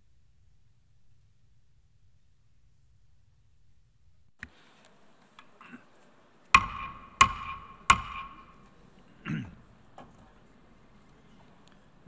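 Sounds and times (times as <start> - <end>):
wooden gavel knocking on block: 6.6 - 8.6.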